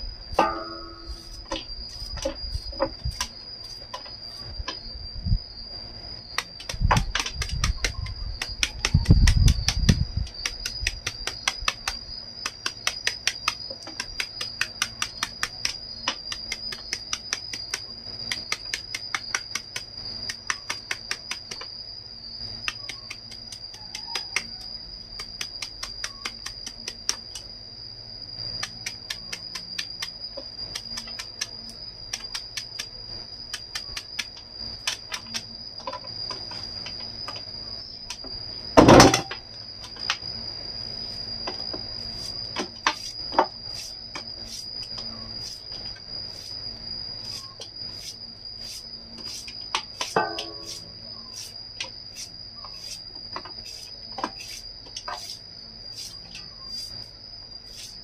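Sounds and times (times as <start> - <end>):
cricket trill: 0.0 - 58.0
knife chopping bamboo shoot: 6.4 - 21.6.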